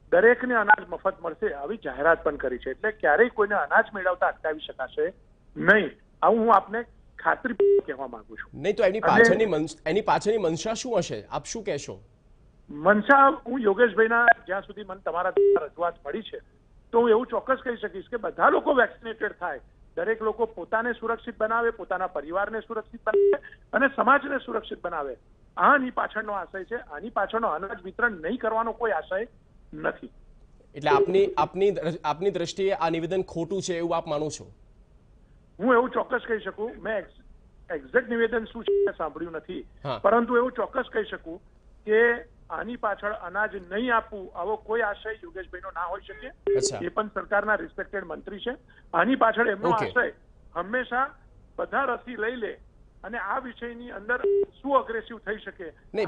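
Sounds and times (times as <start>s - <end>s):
man speaking over phone line: 7.3s - 12.0s, 30.8s - 34.4s, 37.8s - 40.2s, 45.2s - 47.0s, 49.6s - 50.0s
person talking over telephone: 7.5s - 12.0s, 30.8s - 32.1s, 39.9s - 40.3s, 46.2s - 47.0s, 49.6s - 50.0s
electronic telephone beep: 38.7s - 39.0s, 54.2s - 54.5s.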